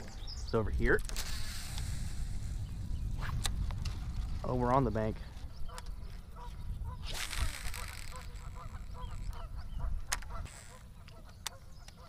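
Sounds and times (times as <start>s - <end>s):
wind rumble on microphone: 0.0s - 12.0s
reel clicks: 0.9s - 2.0s, 7.1s - 12.0s
fishing reel spool whirring: 1.1s - 3.3s, 7.0s - 9.5s, 10.1s - 10.8s
rapid bird calls: 5.4s - 12.0s.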